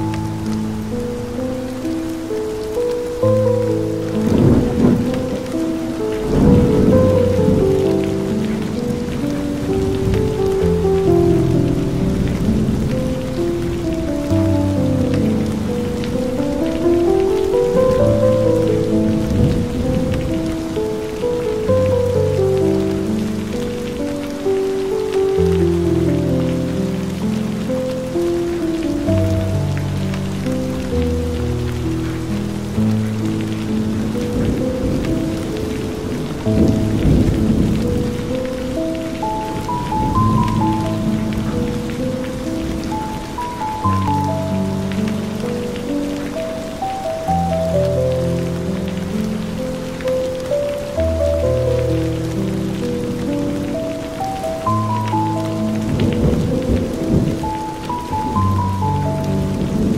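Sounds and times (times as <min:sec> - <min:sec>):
slow calm music: 0:00.0 - 0:59.9
steady rain: 0:00.0 - 0:59.9
thunder rumbling: 0:00.0 - 0:59.9.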